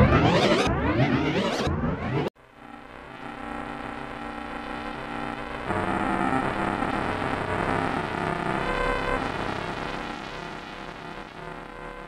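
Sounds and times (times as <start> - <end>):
distorted logo music: 0.0 - 7.8.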